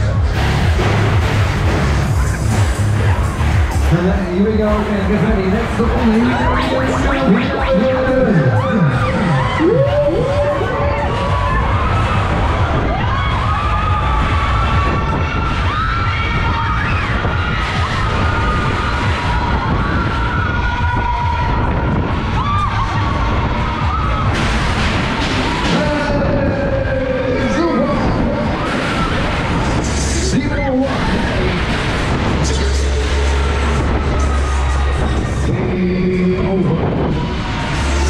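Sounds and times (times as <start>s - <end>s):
loud ride music: 0.0s - 38.0s
riders screaming and shouting: 2.2s - 38.0s
wind rushing across microphone: 7.6s - 38.0s.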